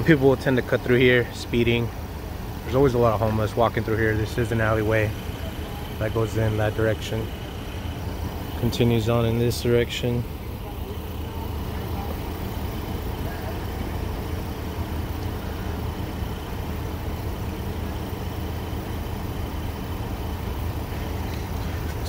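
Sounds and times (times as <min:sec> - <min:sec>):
vehicle engines idling: 0:00.0 - 0:22.0.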